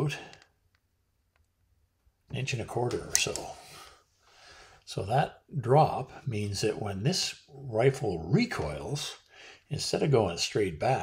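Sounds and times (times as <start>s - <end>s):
man speaking: 0.0s - 0.4s, 2.3s - 3.9s, 4.9s - 11.0s.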